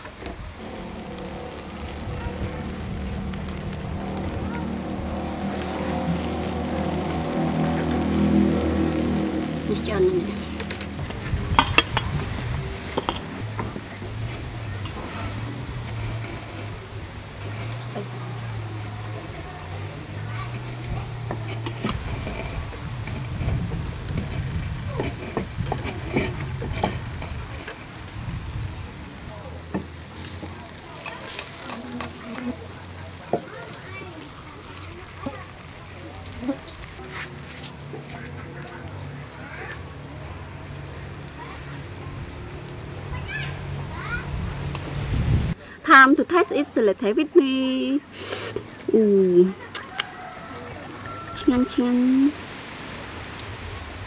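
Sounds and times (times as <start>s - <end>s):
fish sizzling on a grill: 0.5s - 54.0s
droning hum: 0.6s - 45.5s.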